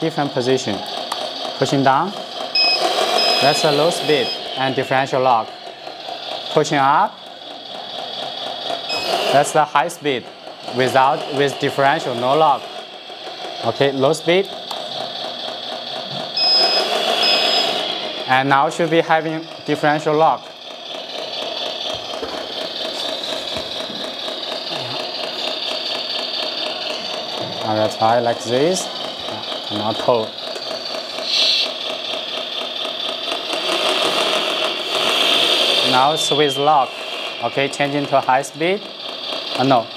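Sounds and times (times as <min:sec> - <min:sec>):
toy truck engine sound: 0:00.0 - 0:39.9
high electronic beep: 0:02.6 - 0:05.3, 0:08.9 - 0:09.3, 0:16.4 - 0:20.2, 0:35.8 - 0:38.8.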